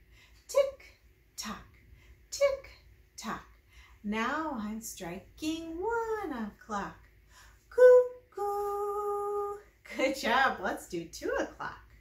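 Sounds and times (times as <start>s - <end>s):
woman singing cuckoo call: 7.8s - 9.6s.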